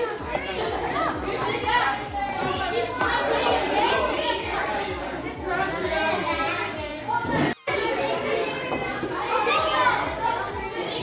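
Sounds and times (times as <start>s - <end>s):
hubbub of children's voices: 0.0s - 11.0s.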